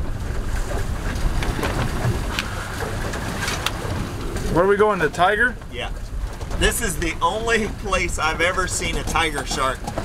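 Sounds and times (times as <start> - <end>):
choppy sea water: 0.0 - 10.0
wind buffeting microphone: 0.0 - 10.0.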